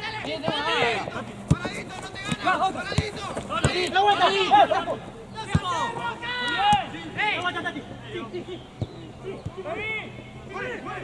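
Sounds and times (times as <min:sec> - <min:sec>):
football players shouting: 0:00.0 - 0:11.0.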